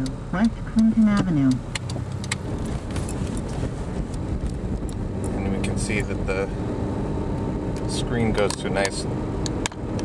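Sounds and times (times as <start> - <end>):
low rumble of engine and road: 0.0 - 10.0.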